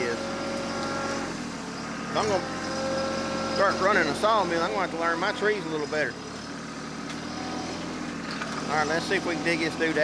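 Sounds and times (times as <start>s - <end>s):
tractor diesel engine running: 0.0s - 10.0s.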